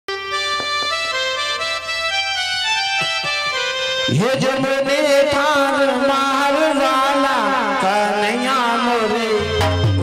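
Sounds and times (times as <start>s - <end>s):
reedy keyboard melody: 0.1s - 10.0s
drum strokes: 0.5s - 1.2s, 2.8s - 3.8s.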